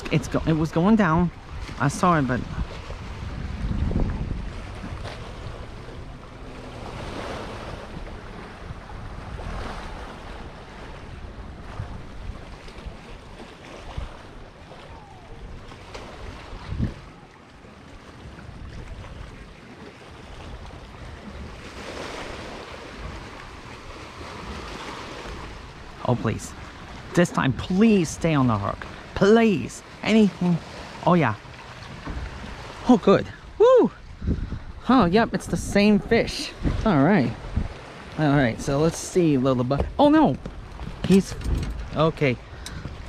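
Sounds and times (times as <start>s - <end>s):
wind blowing over microphone: 0.0s - 17.3s, 30.1s - 43.0s.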